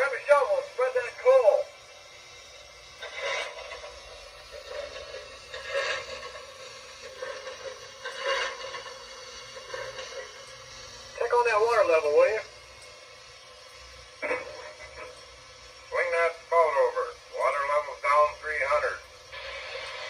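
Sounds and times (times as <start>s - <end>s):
recorded crew voice: 0.0s - 1.8s, 11.2s - 12.5s, 15.9s - 19.1s
steam hissing bursts: 0.0s - 20.0s.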